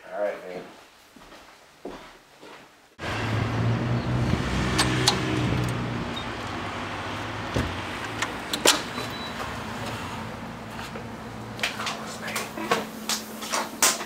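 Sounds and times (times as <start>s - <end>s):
vehicle engine low hum: 3.0s - 13.5s
outdoor noise rush: 3.0s - 14.0s
door clicks and knocks: 7.5s - 9.1s.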